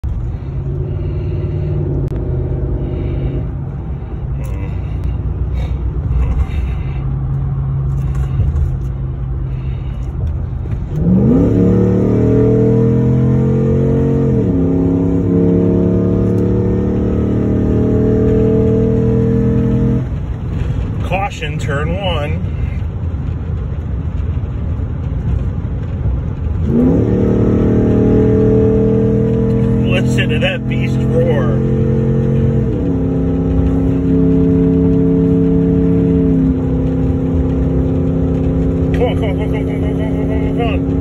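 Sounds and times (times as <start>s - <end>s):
car engine accelerating: 0.0s - 41.0s.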